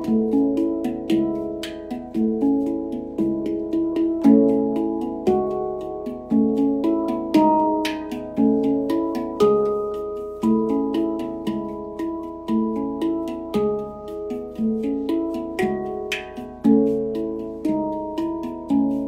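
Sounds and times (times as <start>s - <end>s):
handpan played by hand: 0.0s - 19.0s.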